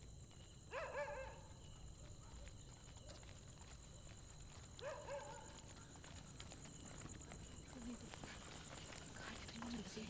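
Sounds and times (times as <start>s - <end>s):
dog barking: 0.7s - 1.5s, 4.8s - 5.6s.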